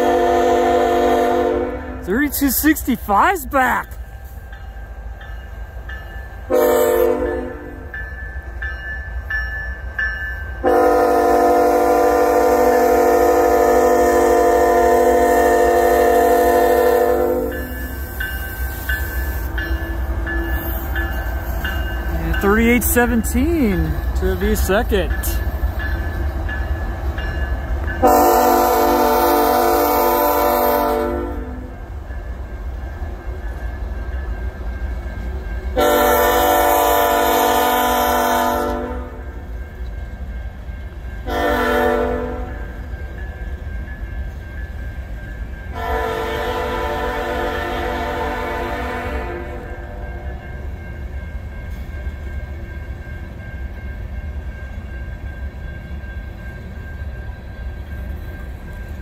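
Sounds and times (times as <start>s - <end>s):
locomotive air horn blasts: 0.0s - 2.1s, 6.5s - 7.8s, 10.6s - 17.6s, 28.0s - 31.7s, 35.8s - 39.2s, 41.3s - 42.6s, 45.8s - 49.8s
freight train rumbling: 0.0s - 59.0s.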